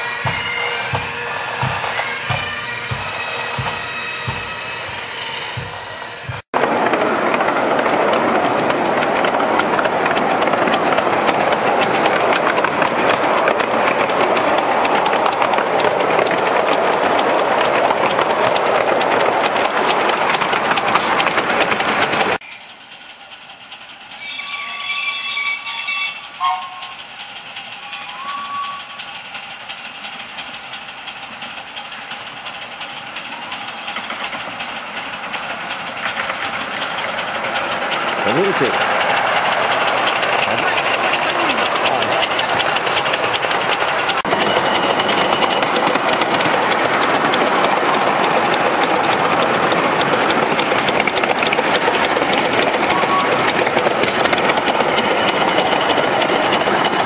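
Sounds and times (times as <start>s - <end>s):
steam chime whistle: 0.0s - 6.4s, 22.4s - 23.1s, 23.8s - 29.6s, 39.8s - 46.2s, 52.8s - 57.0s
steam whistle toots: 0.0s - 6.4s, 24.0s - 29.3s
locomotive running: 0.0s - 57.0s
train rushing rumble: 0.0s - 57.0s.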